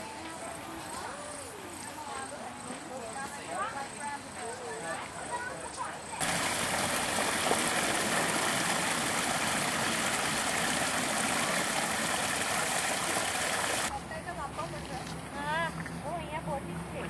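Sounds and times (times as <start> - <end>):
waterfall into pool: 6.2 - 13.9.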